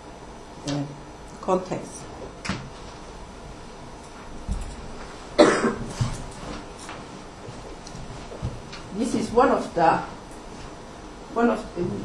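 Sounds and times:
person coughing: 0:05.4 - 0:06.0.

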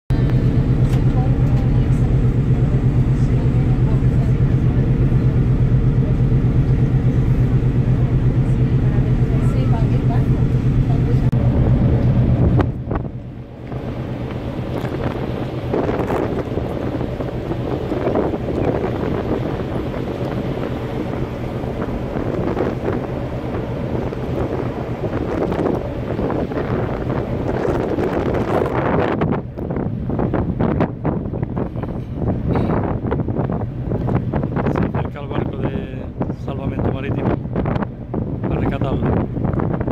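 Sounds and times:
ship engine drone: 0:00.1 - 0:39.9
wind on microphone: 0:00.1 - 0:39.9.

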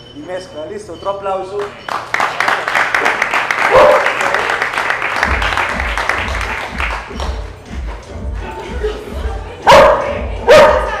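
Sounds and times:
dog barking: 0:03.7 - 0:04.1, 0:09.7 - 0:11.0
music with bass beat: 0:05.2 - 0:11.0.

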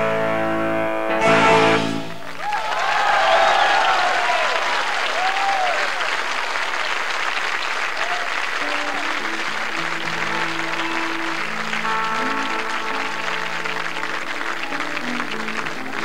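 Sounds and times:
sustained instrument notes: 0:00.0 - 0:02.2
audience applauding: 0:01.2 - 0:16.0.

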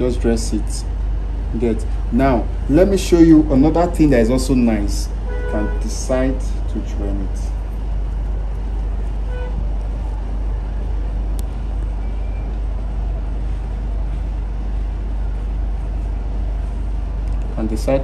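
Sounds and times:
machine humming and rumbling: 0:00.0 - 0:18.0.

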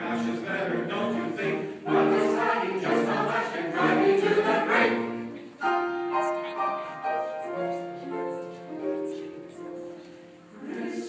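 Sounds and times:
mixed choir singing: 0:00.0 - 0:05.6, 0:09.7 - 0:11.0.

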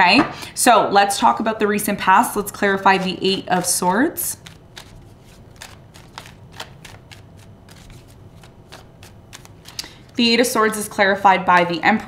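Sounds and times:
cards being shuffled: 0:02.9 - 0:10.8.

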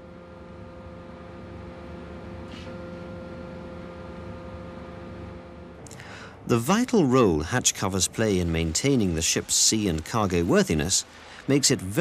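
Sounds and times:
mechanical hum with held tones: 0:00.0 - 0:12.0.

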